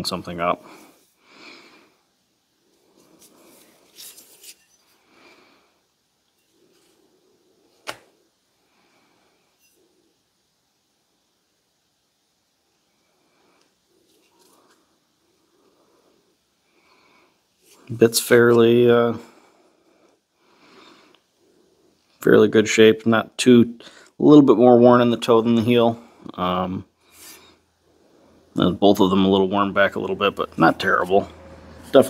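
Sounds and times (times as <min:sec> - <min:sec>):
gloved hands handling axe head: 0:03.0 - 0:05.0.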